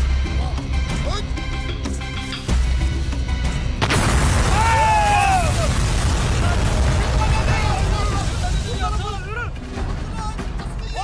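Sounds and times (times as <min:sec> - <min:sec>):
big explosion rumbling: 0:03.8 - 0:09.2
men yelling: 0:04.5 - 0:05.8.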